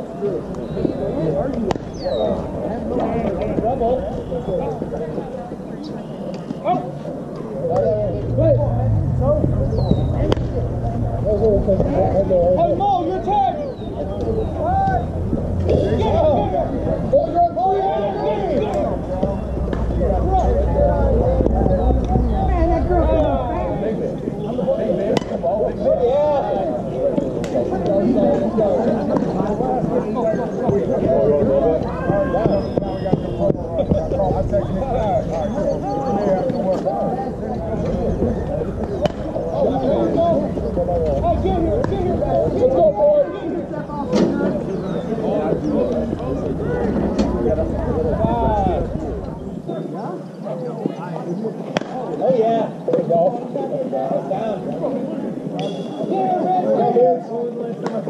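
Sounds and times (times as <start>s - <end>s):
voices talking and calling out: 0.0s - 58.0s
people calling out: 5.9s - 26.8s
wind rumble on microphone: 7.7s - 24.5s, 30.9s - 49.8s
bat hitting ball: 10.2s - 10.5s, 39.0s - 39.4s.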